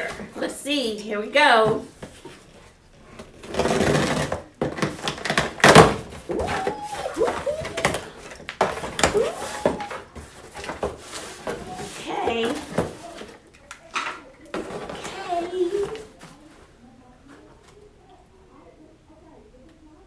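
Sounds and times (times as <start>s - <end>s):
cardboard rustling and scraping: 1.8s - 13.4s.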